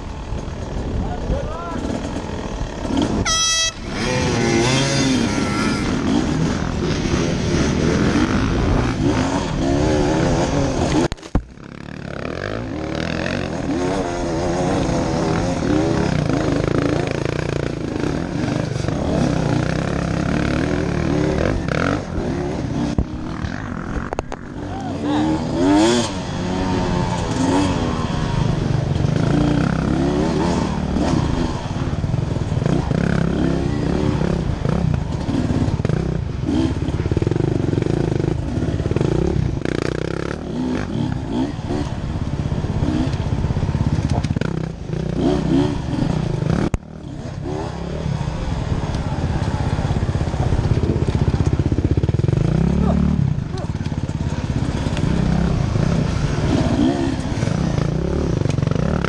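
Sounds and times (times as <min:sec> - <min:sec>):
dirt bike engine revving: 0:01.8 - 0:59.0.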